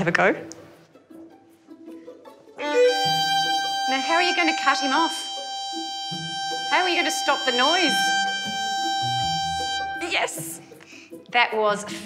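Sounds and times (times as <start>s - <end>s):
bowed violin notes: 2.6s - 10.7s.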